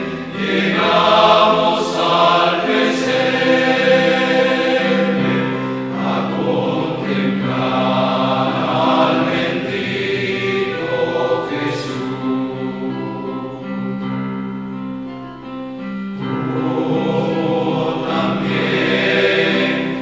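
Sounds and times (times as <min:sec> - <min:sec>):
choir singing a hymn: 0:00.0 - 0:14.8, 0:15.8 - 0:20.0.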